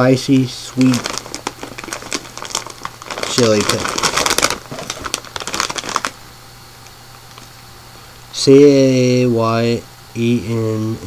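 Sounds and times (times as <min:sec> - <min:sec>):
plastic snack bag crinkling: 0:00.7 - 0:06.2.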